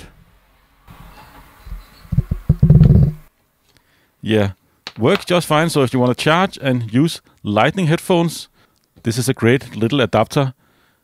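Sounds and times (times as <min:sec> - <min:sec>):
loud thumps at microphone: 0:02.1 - 0:03.2.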